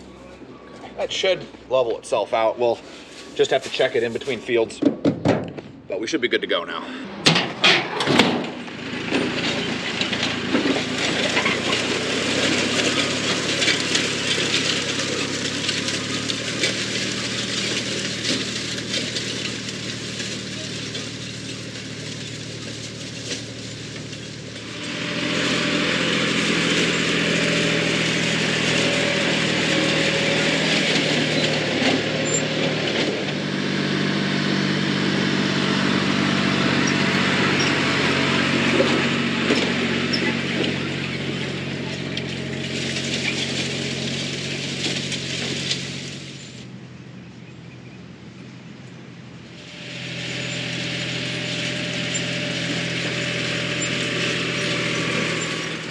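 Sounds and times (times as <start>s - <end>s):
tractor engine running: 0.0s - 55.9s.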